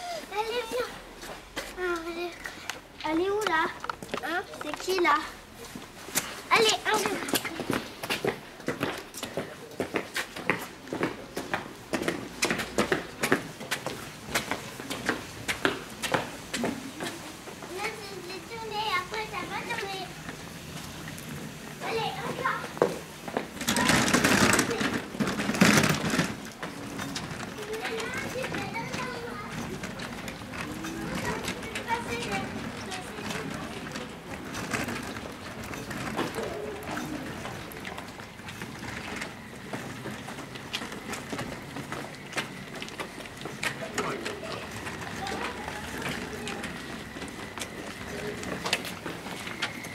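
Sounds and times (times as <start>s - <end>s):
people talking: 0.0s - 1.1s, 1.8s - 5.4s, 6.5s - 7.8s, 16.6s - 20.2s, 21.8s - 23.0s, 23.6s - 25.3s, 27.5s - 34.4s, 35.9s - 38.1s, 43.4s - 49.4s
children playing: 0.0s - 9.8s, 14.4s - 49.9s.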